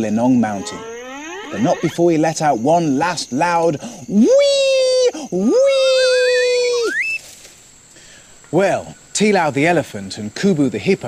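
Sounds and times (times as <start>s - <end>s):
hare whistle call: 5.7s - 7.3s.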